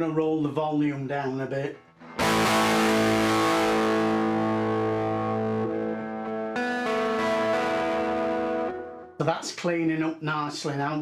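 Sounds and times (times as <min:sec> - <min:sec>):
overdriven electric guitar chords: 0:02.0 - 0:09.2.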